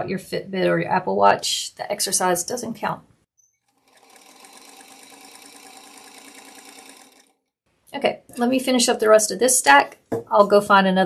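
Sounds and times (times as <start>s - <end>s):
sewing machine stitching: 3.7s - 7.4s.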